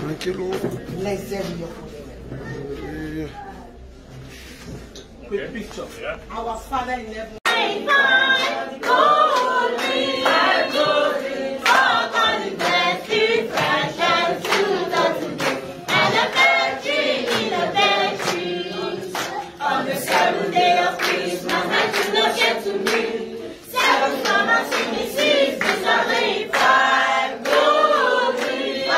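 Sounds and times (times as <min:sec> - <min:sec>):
hand claps: 0:07.4 - 0:23.2, 0:23.8 - 0:28.9
group singing without instruments: 0:07.4 - 0:28.9.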